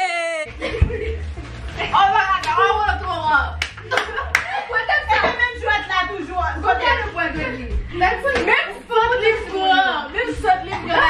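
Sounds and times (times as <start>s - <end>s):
hand claps: 3.6s - 4.6s
excited laughing voices: 3.8s - 5.1s.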